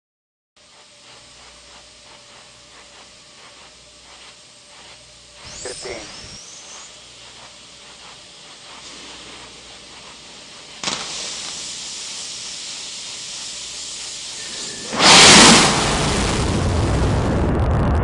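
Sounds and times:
steady hiss: 0.6 - 16.7
rocket engines roaring: 5.4 - 6.4, 14.4 - 18.0.

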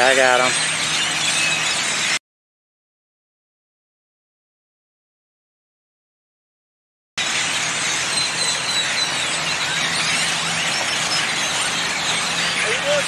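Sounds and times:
outdoor traffic noise: 0.0 - 2.2, 7.2 - 13.0
high squeaky chirps: 7.2 - 13.0.

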